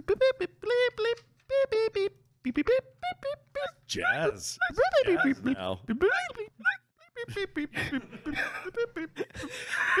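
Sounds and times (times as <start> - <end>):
person vocalizing high boops: 0.0 - 3.8.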